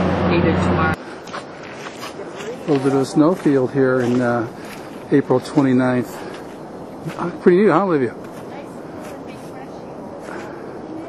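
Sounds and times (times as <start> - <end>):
steady outdoor rushing noise: 0.0 - 11.0.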